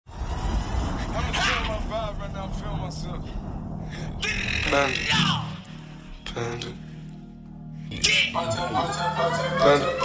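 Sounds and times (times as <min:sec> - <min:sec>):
steady low rumble: 0:00.1 - 0:05.0.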